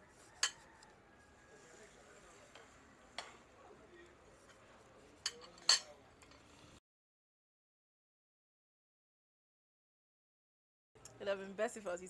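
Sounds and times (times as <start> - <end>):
fork clinking on ceramic dish: 0.4 - 0.7, 5.2 - 6.4.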